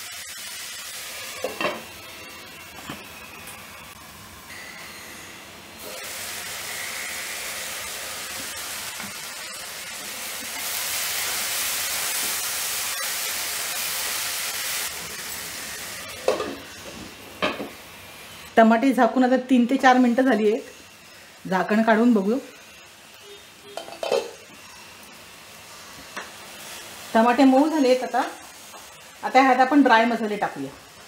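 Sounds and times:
vegetables sizzling in hot oil: 0.0s - 31.0s
glass lid clinking on pan: 23.8s - 24.4s.

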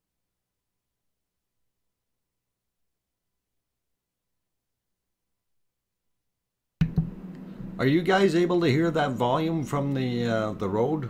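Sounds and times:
low steady hum: 6.8s - 11.0s.

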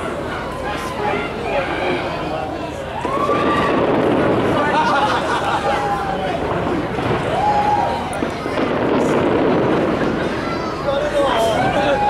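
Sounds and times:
distant fireworks crackling: 0.0s - 12.0s
people's voices: 0.0s - 12.0s.

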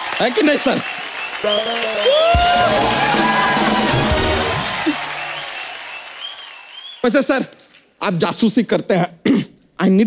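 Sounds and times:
audience applause: 0.0s - 7.0s.

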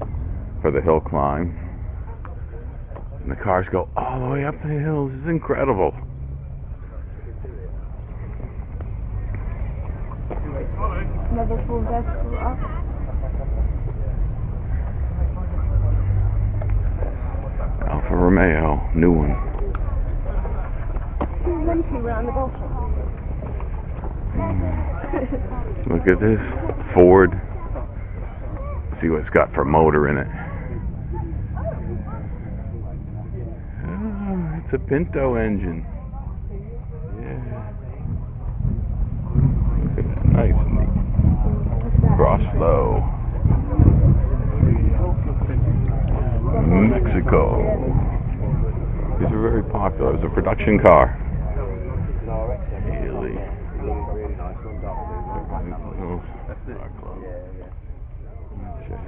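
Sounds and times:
people talking: 0.0s - 6.0s, 6.7s - 59.0s
car engines idling: 0.0s - 59.0s
faint voices: 0.0s - 59.0s
steady low rumble: 0.0s - 59.0s.

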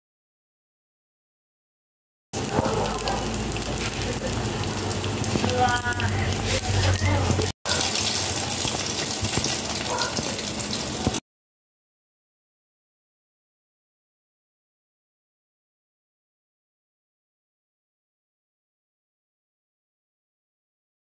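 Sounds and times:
batter sizzling in hot oil: 2.4s - 11.2s.

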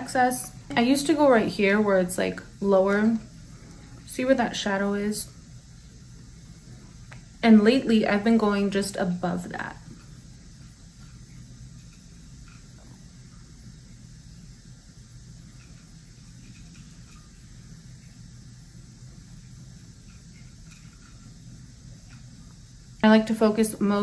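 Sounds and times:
faint hiss: 0.0s - 24.0s
low hum: 0.0s - 24.0s.

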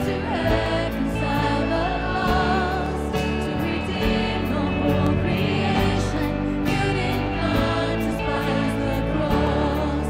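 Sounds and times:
woman singing lead vocal: 0.0s - 10.0s.

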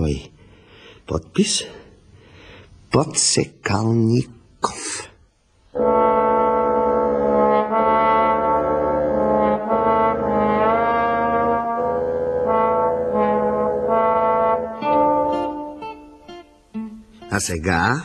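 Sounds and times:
brass instrument slow melody: 5.7s - 17.3s.

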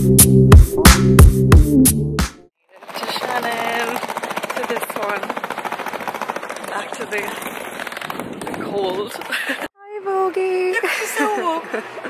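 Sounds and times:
suitcase wheels clattering on paving: 2.8s - 9.7s.

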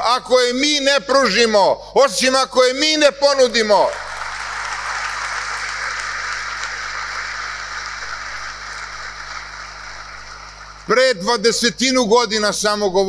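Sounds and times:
large audience applauding: 3.9s - 11.0s.

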